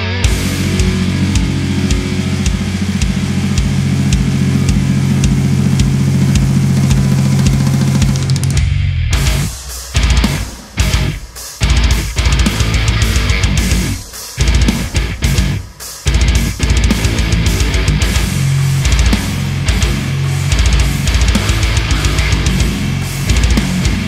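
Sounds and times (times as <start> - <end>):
heavy metal guitar chugging: 0.0 - 24.0
pulsing kick drum: 0.2 - 24.0.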